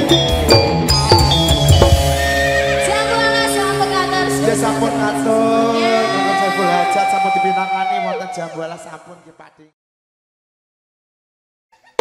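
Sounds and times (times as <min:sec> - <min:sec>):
ringing metal gamelan notes: 0:00.0 - 0:06.5.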